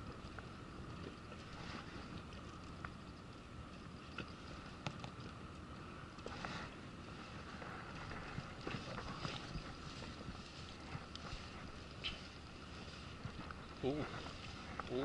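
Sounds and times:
water lapping at a boat: 0.0s - 15.0s
wind on microphone: 6.3s - 15.0s.

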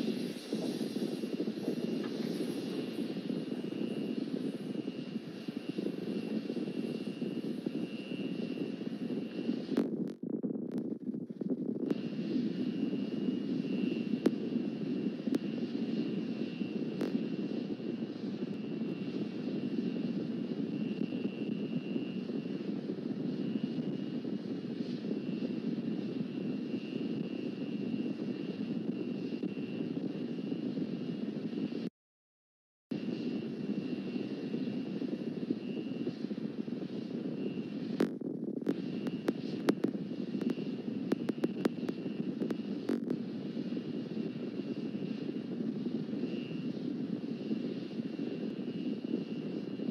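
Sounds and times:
high-pitched whine: 0.0s - 31.9s, 33.0s - 49.9s.

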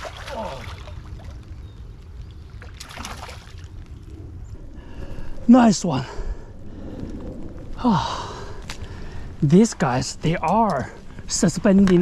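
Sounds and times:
water splashing: 0.0s - 1.4s, 2.6s - 3.7s
wind rumbling on microphone: 0.0s - 12.0s.

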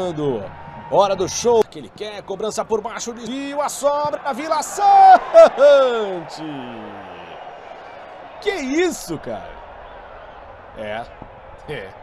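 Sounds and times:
man exclaiming: 4.6s - 6.3s.

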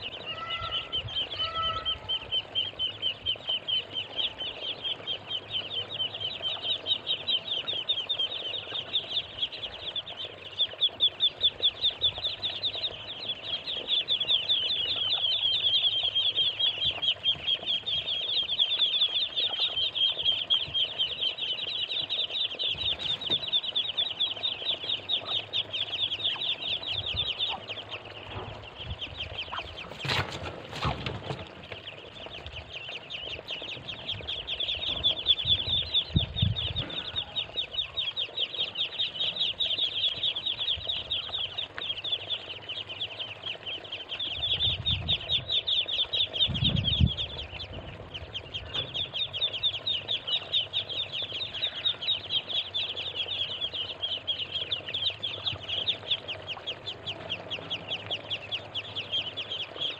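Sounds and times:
lower falling calls: 0.0s - 9.4s
ducklings peeping: 0.0s - 59.9s.

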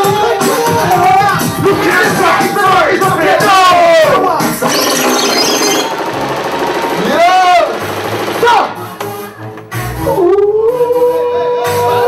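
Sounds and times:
amplified voices over pa: 0.0s - 5.1s
rapid rattling pulse: 4.6s - 8.9s.

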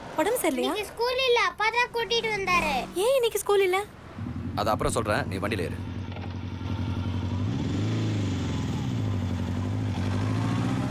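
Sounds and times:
motorcycle engine revving: 4.2s - 10.9s.

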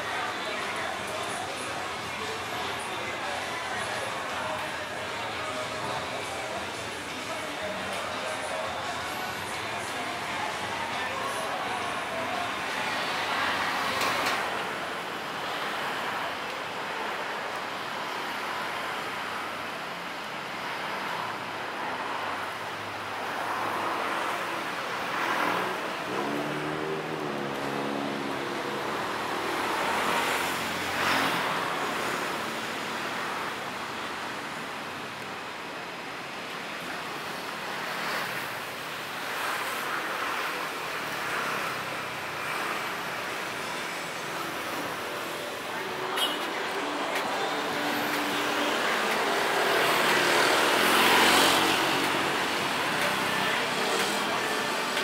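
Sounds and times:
city street traffic: 0.0s - 55.0s
vehicles passing: 0.0s - 55.0s.

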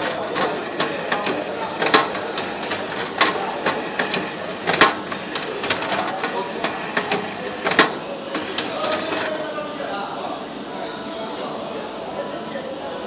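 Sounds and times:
banding machine clicks and clacks: 0.0s - 9.3s.

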